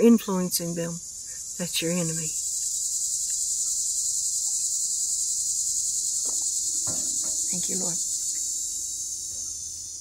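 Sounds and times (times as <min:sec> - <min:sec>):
crickets chirping: 0:00.0 - 0:10.0
faint knocks: 0:06.2 - 0:08.6.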